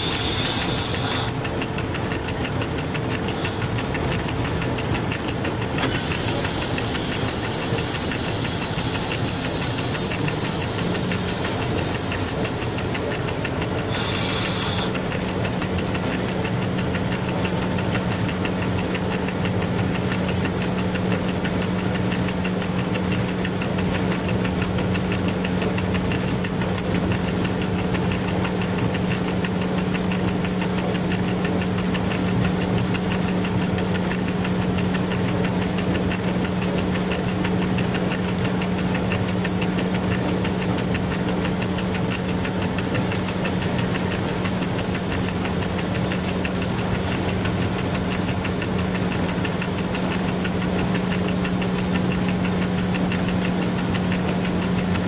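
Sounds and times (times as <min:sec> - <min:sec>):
locomotive cab hum: 0:00.0 - 0:55.0
wheels rumbling on rail: 0:00.0 - 0:55.0.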